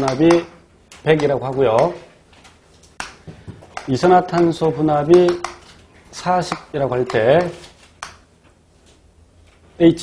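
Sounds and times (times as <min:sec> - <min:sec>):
chalk tapping on a blackboard: 0:00.0 - 0:00.5, 0:03.0 - 0:05.7, 0:06.4 - 0:08.2.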